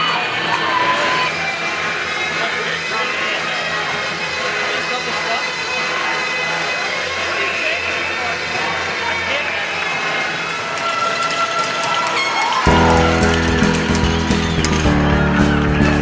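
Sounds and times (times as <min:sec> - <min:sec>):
indistinct crowd chatter: 0:00.0 - 0:16.0
music over sound system: 0:11.8 - 0:16.0
heavy bass music track: 0:12.7 - 0:16.0.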